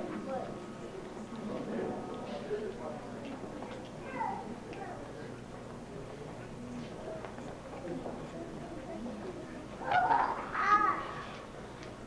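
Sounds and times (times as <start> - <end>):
children chattering: 0.0 - 11.8
high-pitched child calls: 9.9 - 11.2.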